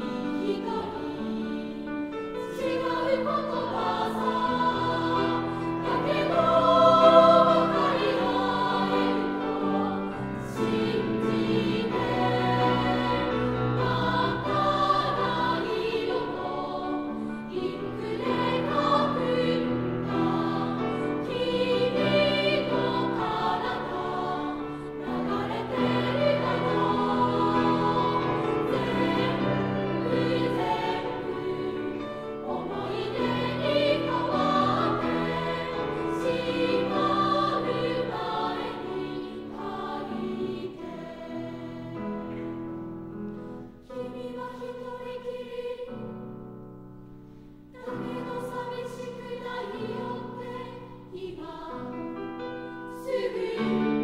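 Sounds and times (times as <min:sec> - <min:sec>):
children's choir singing: 0:00.0 - 0:42.8, 0:43.8 - 0:46.5, 0:47.8 - 0:54.0.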